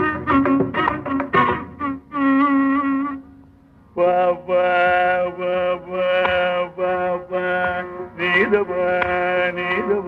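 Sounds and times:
violin: 0:00.0 - 0:03.2
man singing long notes: 0:00.0 - 0:03.3, 0:03.9 - 0:10.0.

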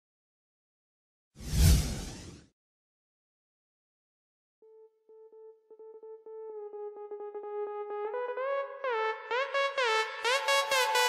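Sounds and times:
whoosh with deep rumble: 0:01.4 - 0:02.4.

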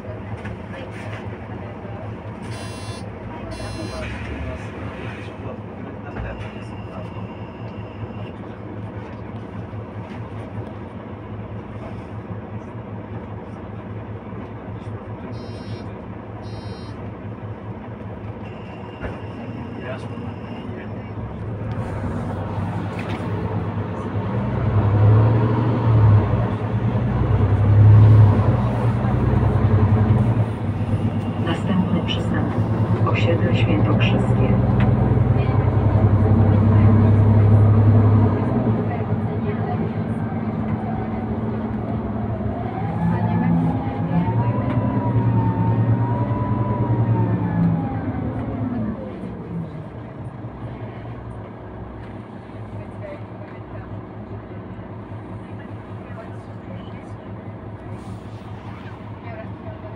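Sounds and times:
bus engine drone from inside: 0:00.0 - 0:59.9.

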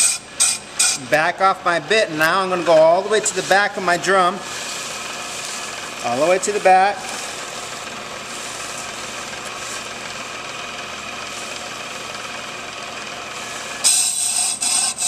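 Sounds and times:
high-pitched metallic scraping: 0:00.0 - 0:01.1, 0:13.5 - 0:15.0
brake lathe running: 0:00.0 - 0:15.0.

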